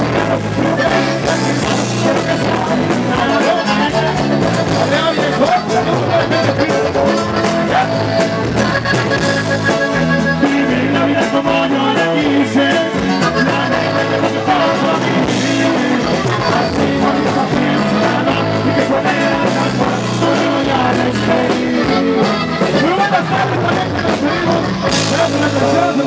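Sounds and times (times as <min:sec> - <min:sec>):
electric bass: 0:00.0 - 0:26.0
live band music: 0:00.0 - 0:26.0
person singing: 0:00.0 - 0:26.0.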